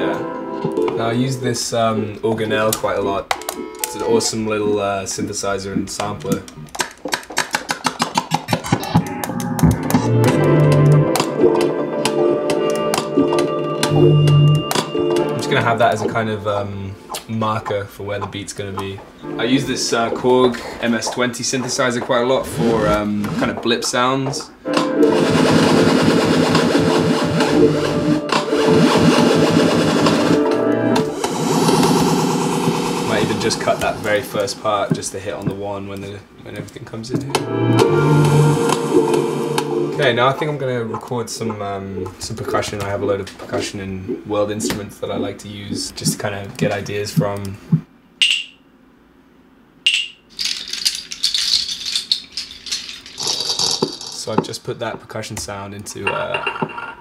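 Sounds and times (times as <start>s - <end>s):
synthesizer plucked notes: 8.5s - 16.2s, 19.2s - 20.6s, 24.6s - 35.0s, 37.2s - 40.6s
sustained synth tones: 8.6s - 16.2s, 19.2s - 20.9s
synthesizer chords over bass note: 8.7s - 15.7s, 25.0s - 34.6s, 37.3s - 40.2s.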